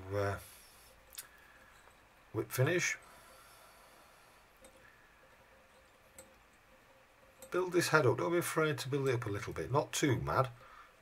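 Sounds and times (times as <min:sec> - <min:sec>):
faint ticks: 0:01.1 - 0:02.0.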